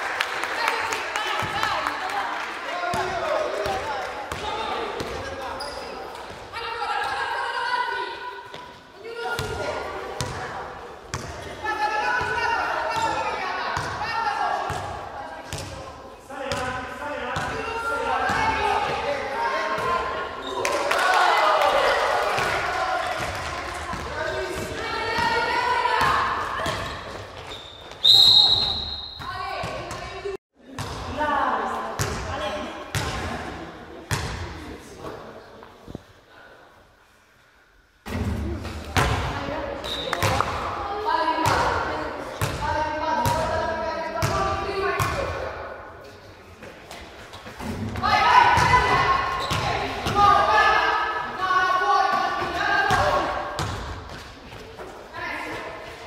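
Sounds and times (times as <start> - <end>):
voices of players and onlookers: 0.0 - 56.0
basketballs bouncing on gym floor: 9.4 - 10.5, 13.8 - 15.9, 22.4 - 31.2, 42.4 - 43.6, 44.2 - 45.4, 47.6 - 50.4, 52.4 - 54.6
referee's whistle blast: 28.0 - 29.3.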